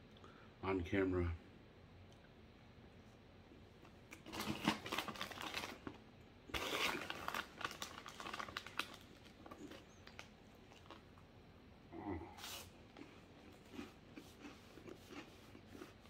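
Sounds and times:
plastic snack bag crinkling: 4.1s - 11.2s.

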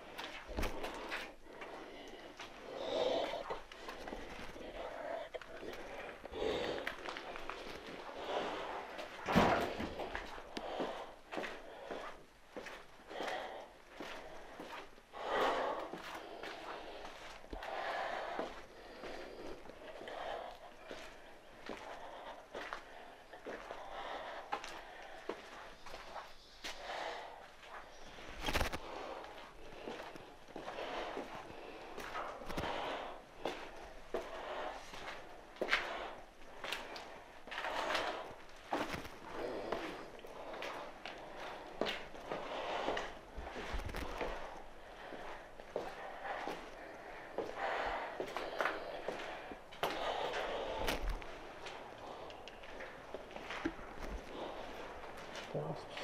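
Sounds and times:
footsteps going down stairs: 0.0s - 56.0s
heavy breathing: 0.0s - 56.0s.

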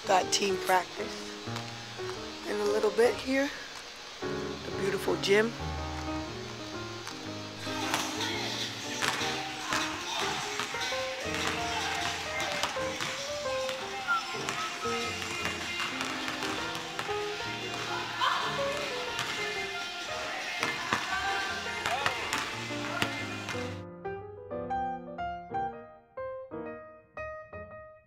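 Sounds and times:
voice over music: 7.5s - 23.8s.

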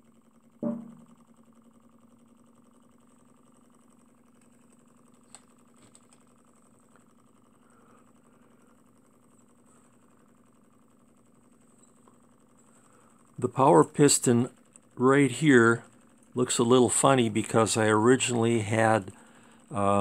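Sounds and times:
small engine mechanical hum: 0.0s - 20.0s.

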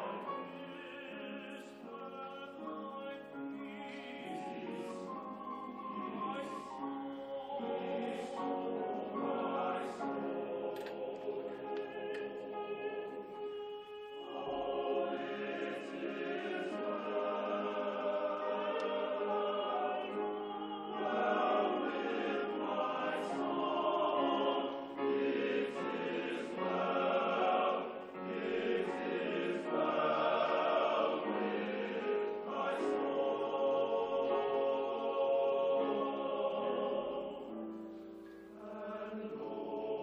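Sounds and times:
male choir singing: 0.0s - 40.0s.

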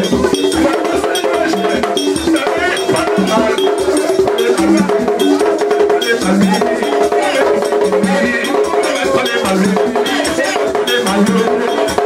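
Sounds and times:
drums: 0.0s - 12.0s
man singing into a microphone: 0.0s - 12.0s.

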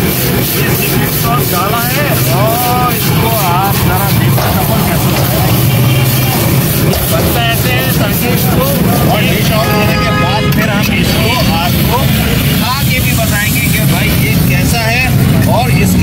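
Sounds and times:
ladle scraping a wok: 0.0s - 10.6s
chatter of voices: 0.0s - 16.0s
steady low rumble: 0.0s - 16.0s.

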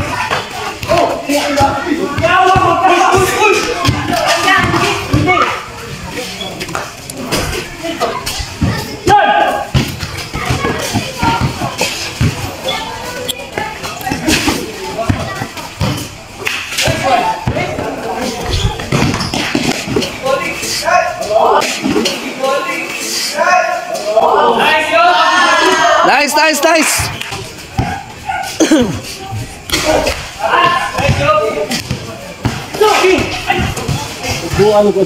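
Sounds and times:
players calling out: 0.0s - 35.0s
basketball bouncing on concrete: 1.6s - 5.3s, 9.7s - 12.4s, 18.8s - 20.0s, 27.0s - 28.1s, 31.0s - 34.8s.

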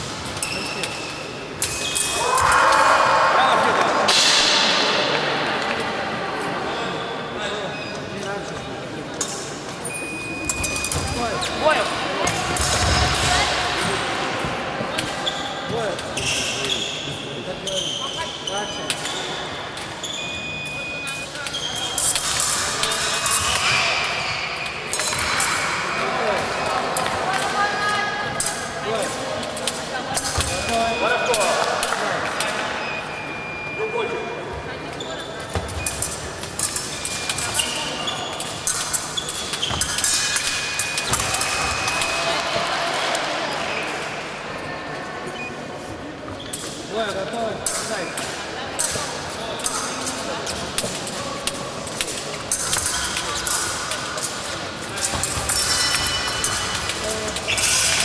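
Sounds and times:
shoe squeaks: 0.3s - 2.2s, 9.8s - 11.8s, 14.9s - 25.7s, 34.9s - 42.4s, 46.3s - 46.8s, 55.2s - 58.0s.

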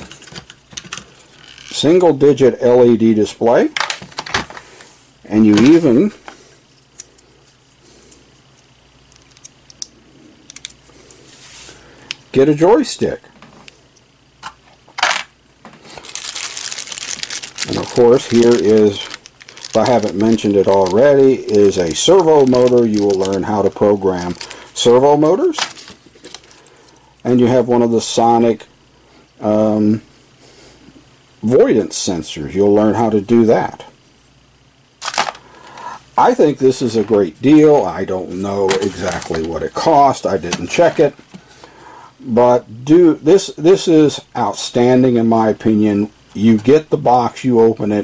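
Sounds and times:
plastic bag crinkling: 15.0s - 26.9s, 35.0s - 36.0s, 36.8s - 41.4s.

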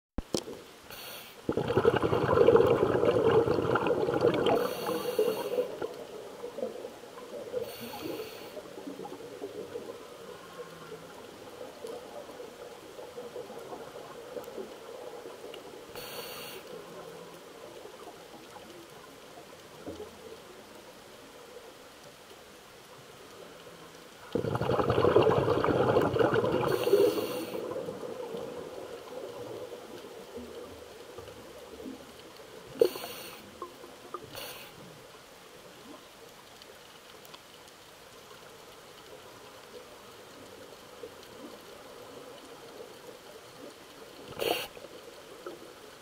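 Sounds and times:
faint steady crackle: 0.2s - 46.0s
regulator inhale hiss: 0.9s - 1.5s, 4.4s - 5.9s, 7.6s - 8.9s, 15.9s - 17.0s, 26.7s - 27.8s, 32.8s - 33.6s, 34.2s - 35.0s, 44.3s - 44.9s
exhaled bubbles rushing: 1.4s - 8.2s, 24.2s - 30.8s.

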